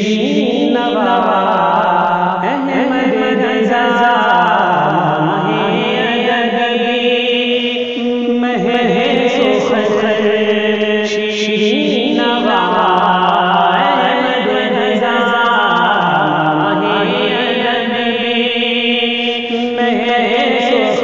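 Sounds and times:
man singing into a microphone: 0.0s - 21.0s.

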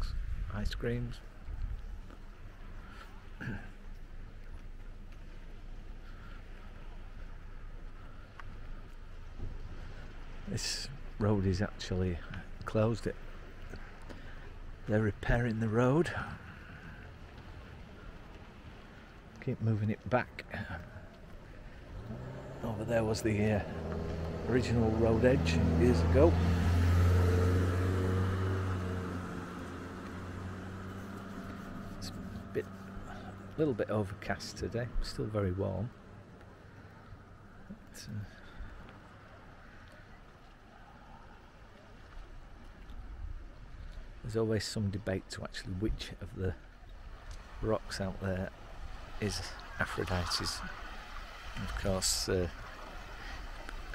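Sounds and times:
outdoor rushing noise: 0.0s - 39.8s, 46.2s - 53.9s.

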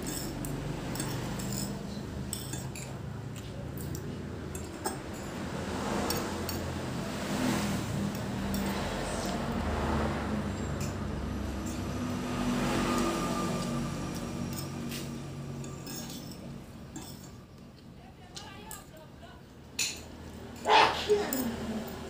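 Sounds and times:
cutlery clinking on a plate: 0.0s - 5.4s, 14.5s - 17.4s.

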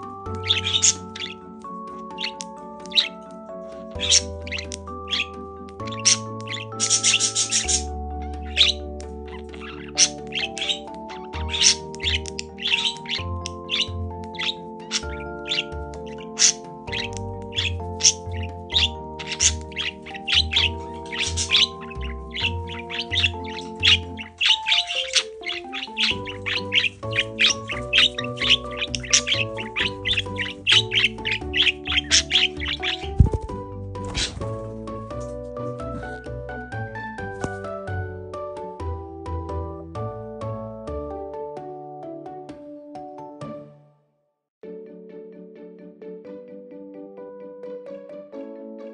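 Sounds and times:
background music: 0.0s - 48.9s
budgerigar chirping: 0.3s - 3.2s, 4.0s - 35.1s.

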